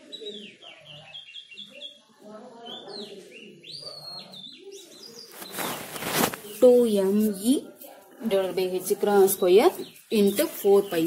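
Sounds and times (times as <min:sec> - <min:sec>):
small birds chirping: 0:00.0 - 0:11.0
rustling noise: 0:05.2 - 0:11.0.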